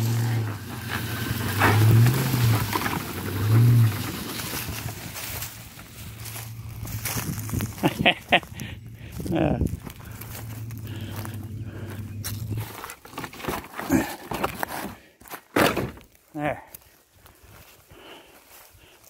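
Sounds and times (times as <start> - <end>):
truck engine drone: 0.0 - 13.3.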